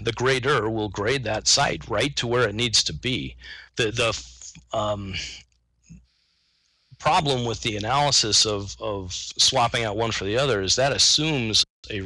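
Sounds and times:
man speaking: 0.0s - 5.4s, 7.0s - 12.0s.

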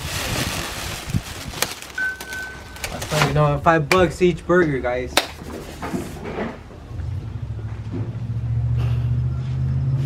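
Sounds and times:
plastic bag rustling: 0.0s - 3.6s.

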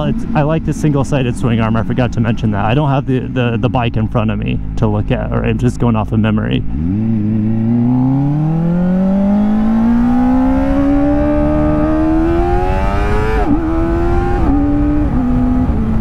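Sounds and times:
motorcycle engine accelerating: 0.0s - 16.0s.

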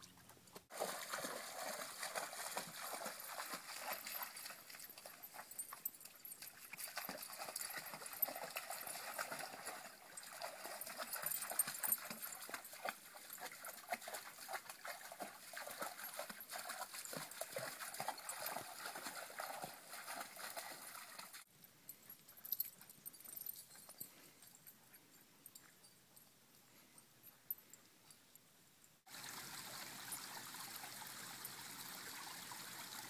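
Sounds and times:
stream trickling: 0.0s - 21.5s, 29.1s - 33.0s
dog splashing through water: 0.7s - 5.7s, 6.8s - 21.4s.

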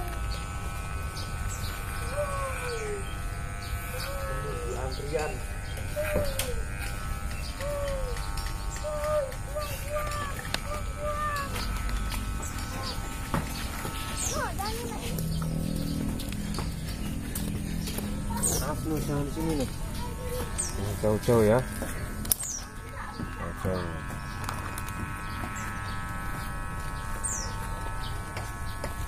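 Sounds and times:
electric hair clippers humming: 0.0s - 29.0s.

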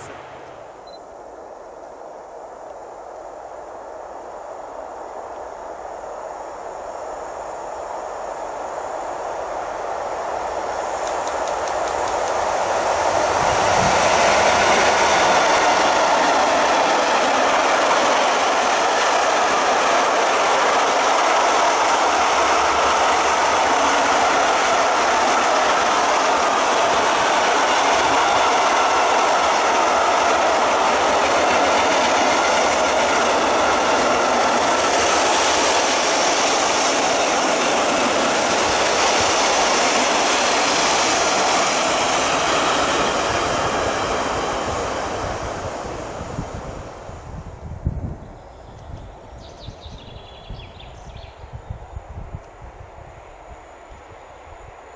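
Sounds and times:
freight train wheels rushing on rail: 0.0s - 54.9s.

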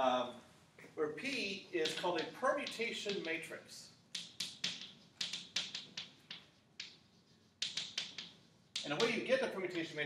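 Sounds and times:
chalk scratching on a blackboard: 1.8s - 9.9s.

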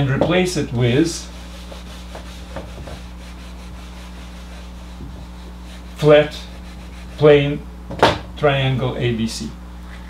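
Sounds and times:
eraser rubbing on whiteboard: 1.2s - 7.4s.

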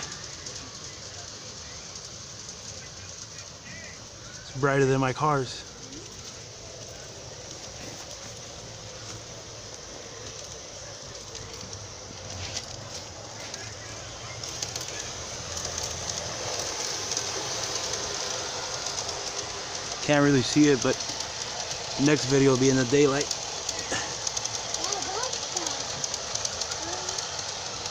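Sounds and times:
model train motor hum: 0.0s - 27.9s
wheels rolling on rails: 0.0s - 27.9s.

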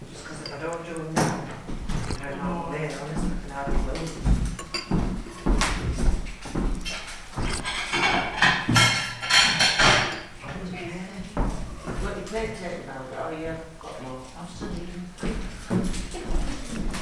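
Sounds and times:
voices talking: 0.0s - 5.0s, 10.0s - 17.0s
knocks and rustling handling noise: 0.0s - 10.6s.

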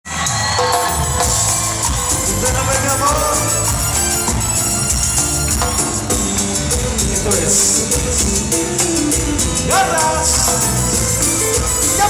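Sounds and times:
live cumbia band playing: 0.1s - 12.0s.

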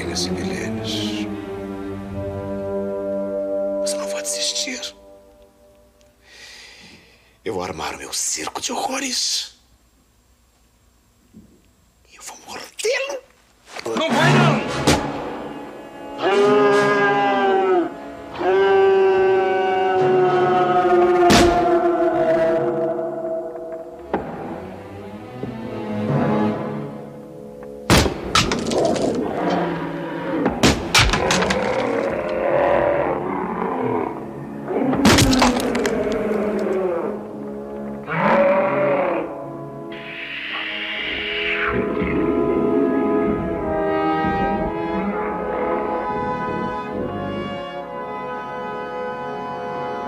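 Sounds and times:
brass music: 0.0s - 5.7s, 14.1s - 27.5s, 34.1s - 50.0s
man wailing: 16.2s - 23.6s, 34.9s - 37.3s
sharp wooden cracks: 27.9s - 29.3s, 30.5s - 32.4s, 34.9s - 36.8s
dramatic soundtrack: 39.2s - 50.0s.

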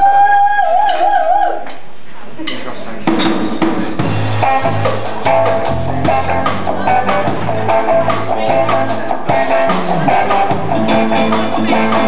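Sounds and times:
drum kit strokes: 3.0s - 12.0s
reggae band playing: 3.0s - 12.0s.

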